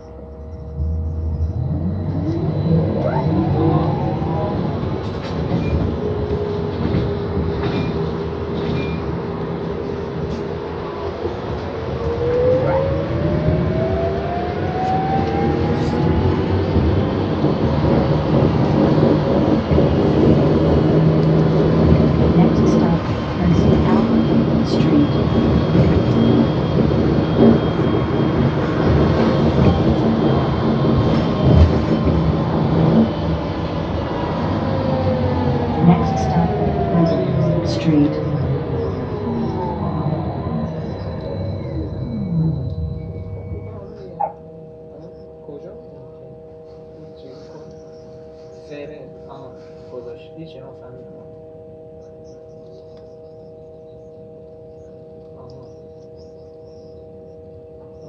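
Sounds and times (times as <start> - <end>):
bus rumble and road noise: 0.0 - 50.2
bus motor whine: 0.0 - 58.0.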